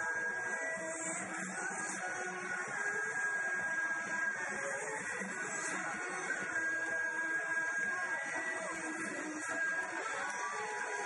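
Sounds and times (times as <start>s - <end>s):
loud dance music: 0.0s - 11.0s.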